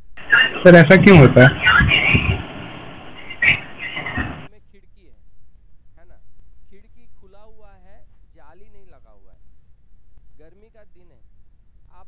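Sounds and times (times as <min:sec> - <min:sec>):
muffled voice over microphone: 0:00.2 - 0:05.0.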